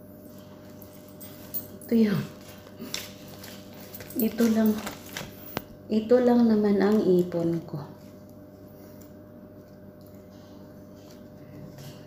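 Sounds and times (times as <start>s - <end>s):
low steady hum: 0.0s - 12.0s
handling paper banknotes: 0.5s - 5.8s
woman's voice: 1.9s - 2.4s, 4.1s - 5.0s, 5.9s - 8.0s.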